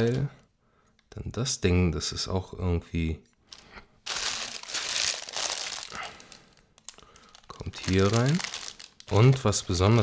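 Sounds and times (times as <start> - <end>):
plastic bag crinkling: 3.5 - 10.0.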